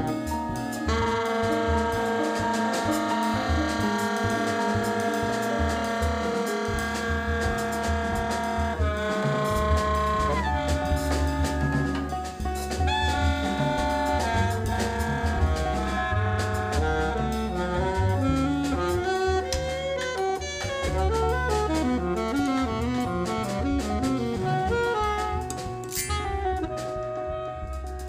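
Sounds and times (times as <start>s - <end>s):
alto saxophone melody: 0.0s - 28.0s
double bass: 0.0s - 28.0s
drum kit with cymbals: 0.0s - 28.0s
piano: 0.0s - 28.0s.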